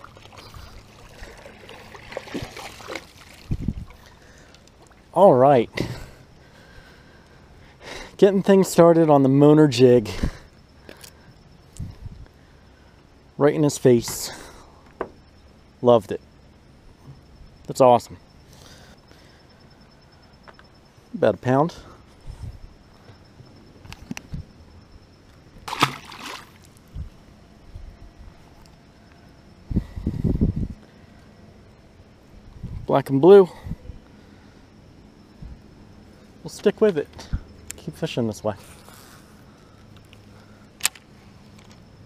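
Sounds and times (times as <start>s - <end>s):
fish splashing into water: 0.0s - 3.6s, 25.6s - 26.8s
faint background hum: 0.0s - 42.0s.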